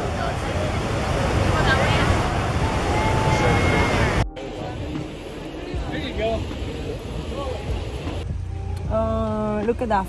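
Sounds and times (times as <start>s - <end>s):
wind buffeting microphone: 0.0s - 4.2s
ocean surf rushing: 0.0s - 8.3s.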